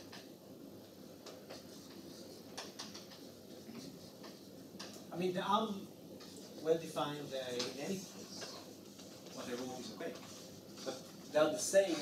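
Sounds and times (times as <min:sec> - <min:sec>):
chalk writing on blackboard: 0:01.4 - 0:04.7, 0:07.2 - 0:12.0.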